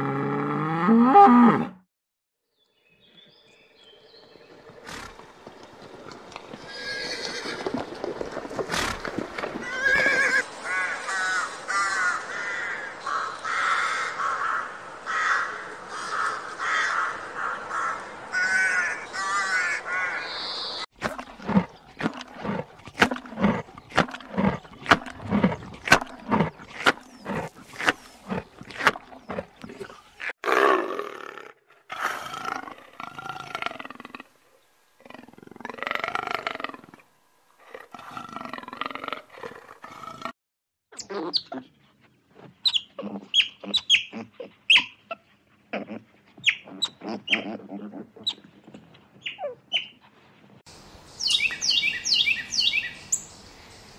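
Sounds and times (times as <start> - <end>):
horse neighing: 6.7 - 7.8, 9.6 - 10.4
short animal sounds: 45.7 - 48.5.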